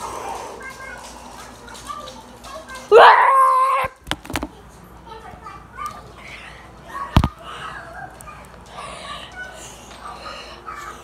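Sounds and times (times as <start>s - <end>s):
child screaming: 2.9s - 4.0s.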